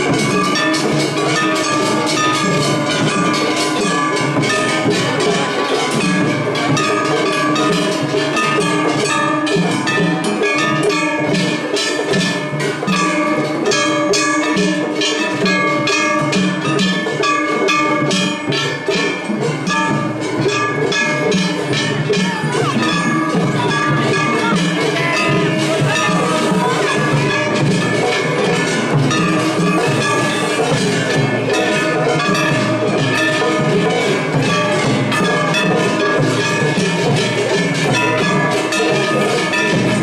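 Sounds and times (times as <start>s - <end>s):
hand gongs clanging rapidly: 0.0s - 40.0s
taiko drums pounding: 0.0s - 40.0s.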